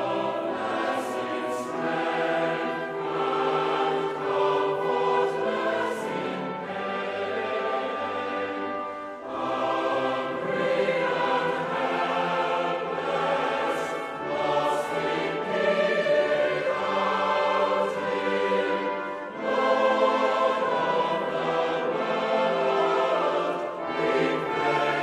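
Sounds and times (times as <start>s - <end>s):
choir singing a hymn: 0.0s - 25.0s
orchestral accompaniment: 0.0s - 25.0s.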